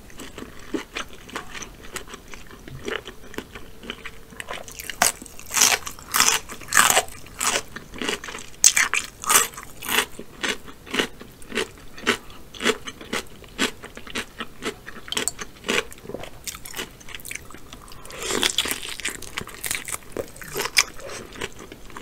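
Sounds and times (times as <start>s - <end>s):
crisp cucumber crunches: 4.6s - 14.3s.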